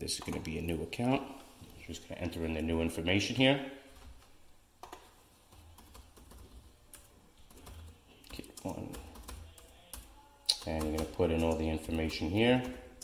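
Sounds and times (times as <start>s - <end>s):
man talking: 0.0s - 3.8s, 8.3s - 12.9s
computer keyboard typing: 0.1s - 0.7s, 4.8s - 13.0s.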